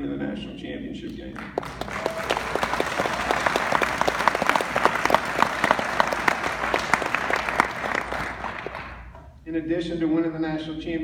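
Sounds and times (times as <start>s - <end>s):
audience applauding: 1.4s - 9.3s.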